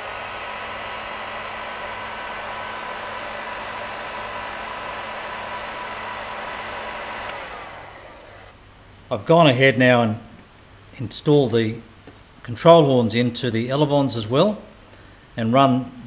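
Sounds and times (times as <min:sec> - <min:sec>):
heat gun fan blowing: 0:00.0 - 0:08.6
faint motor whine: 0:00.0 - 0:09.2.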